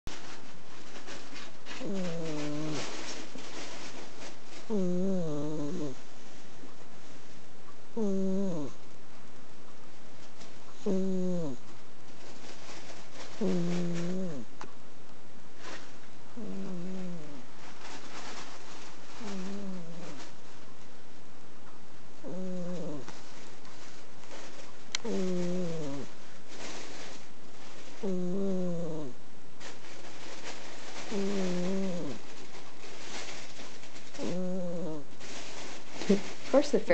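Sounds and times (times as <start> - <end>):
cat snoring: 1.1 - 3.4, 4.6 - 6.0, 7.9 - 8.8, 10.7 - 11.6, 13.3 - 14.5, 16.3 - 17.5, 19.2 - 20.3, 22.2 - 23.2, 25.0 - 26.7, 28.0 - 29.2, 30.9 - 32.4, 34.0 - 35.1.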